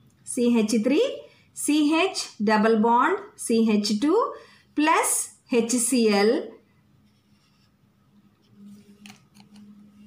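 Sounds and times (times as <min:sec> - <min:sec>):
felt-tip marker scratching on paper: 0:07.0 - 0:07.8.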